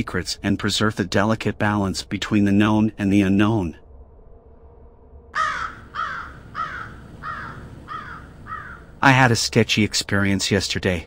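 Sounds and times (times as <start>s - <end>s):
bird calling with falling pitch: 5.4s - 9.0s.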